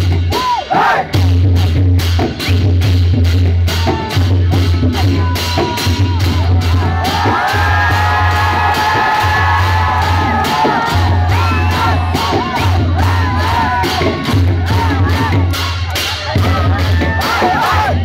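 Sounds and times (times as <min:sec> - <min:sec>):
drums booming: 0:00.0 - 0:18.0
crowd cheering and whooping: 0:05.2 - 0:18.0.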